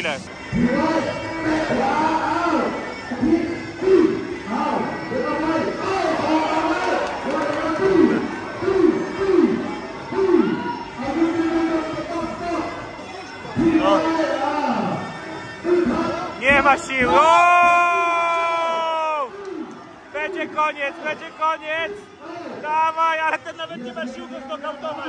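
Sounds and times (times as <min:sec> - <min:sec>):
man speaking: 0:00.0 - 0:06.6, 0:20.1 - 0:25.0
crowd chatter: 0:00.0 - 0:25.0.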